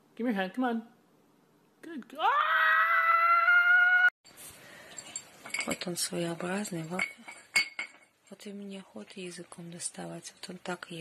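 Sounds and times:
long loud scream: 2.2s - 4.2s.

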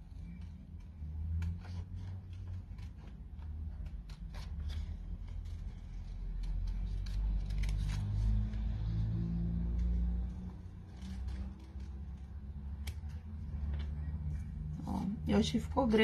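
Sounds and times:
scissors snipping paper: 0.0s - 9.0s, 9.6s - 14.1s.

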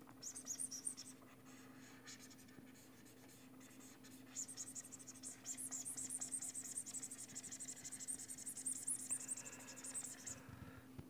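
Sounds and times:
faint steady hum: 0.0s - 11.0s
stylus scratching on pen tablet: 2.1s - 10.4s.

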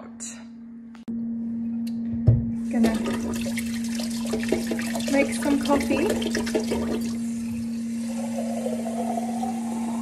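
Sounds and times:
steady hum: 0.0s - 10.0s
tap water running into metal pot: 2.7s - 10.0s.

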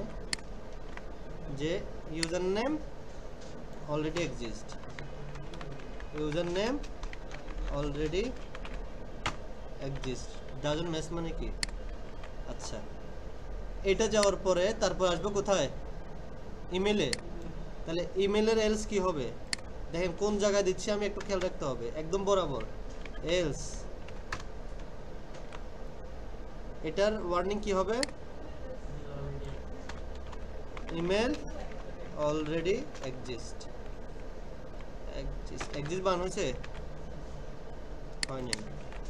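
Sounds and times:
steady background hiss: 0.0s - 39.0s
computer keyboard typing: 4.1s - 10.7s, 24.0s - 25.6s, 29.5s - 33.2s, 35.5s - 37.0s.

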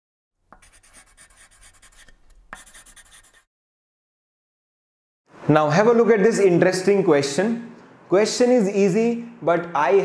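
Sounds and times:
marker scratching on paper: 0.5s - 3.5s.

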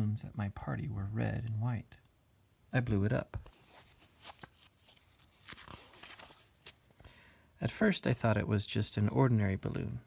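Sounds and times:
paper pages rustling: 3.4s - 7.0s.

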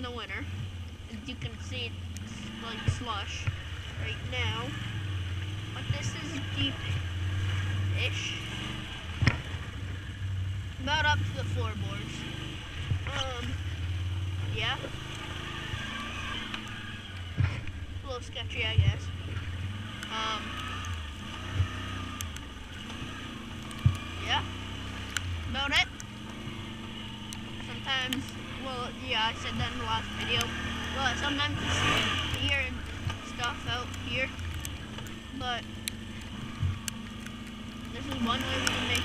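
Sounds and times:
atv engine running: 0.0s - 39.0s.

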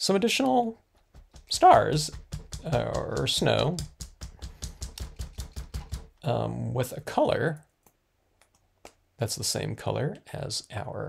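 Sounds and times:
rapid tapping on hard surface: 0.9s - 6.2s.

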